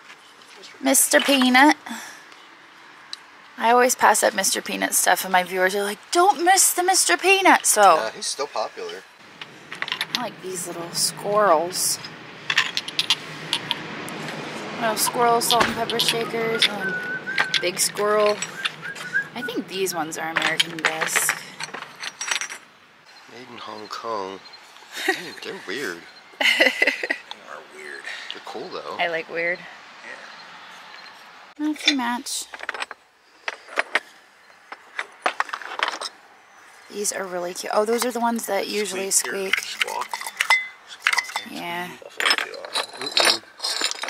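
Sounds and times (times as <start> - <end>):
ceramic shakers clinking: 12.5 - 13.8, 15.4 - 19.5, 20.4 - 22.7, 39.2 - 41.5, 42.1 - 44.0.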